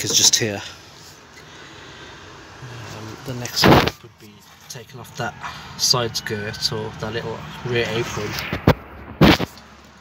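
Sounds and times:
man talking: 0.0 - 0.8, 2.6 - 8.5.

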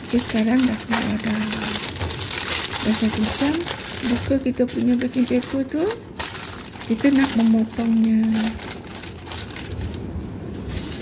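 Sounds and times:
plastic tray and paper rustling: 0.0 - 11.0.

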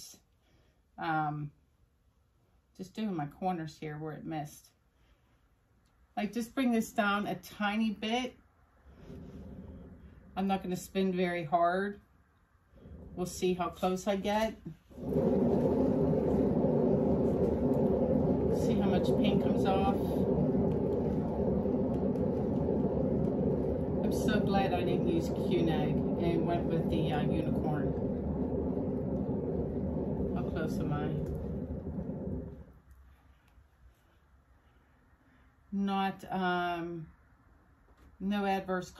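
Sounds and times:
paint spinner whirring: 8.9 - 11.1, 12.7 - 33.0.

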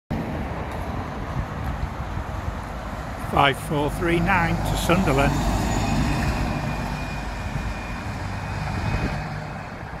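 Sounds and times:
bus diesel engine pulling away: 0.8 - 10.0.

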